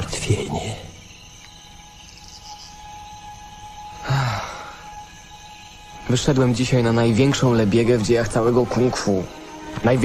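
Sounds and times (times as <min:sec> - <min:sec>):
crickets chirping: 0:00.0 - 0:10.0
faint sustained music tones: 0:00.0 - 0:10.0
person sighing: 0:04.0 - 0:04.8.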